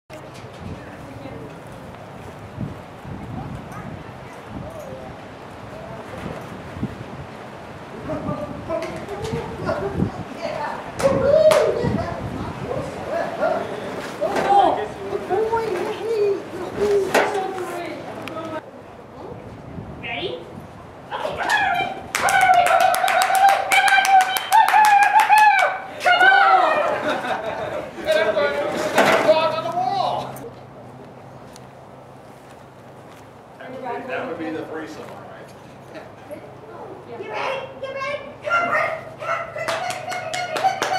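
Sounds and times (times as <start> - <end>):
murmur of people talking: 0.2 - 22.1, 25.8 - 40.9
rapid hand clapping: 22.1 - 25.8, 39.6 - 40.9.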